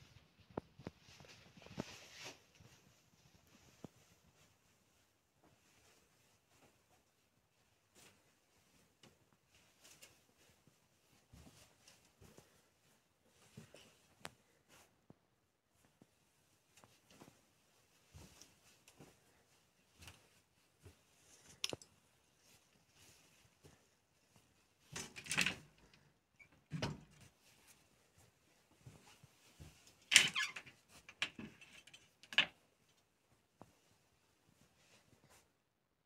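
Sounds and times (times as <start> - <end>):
small knocks and handling noises: 18.0 - 35.5.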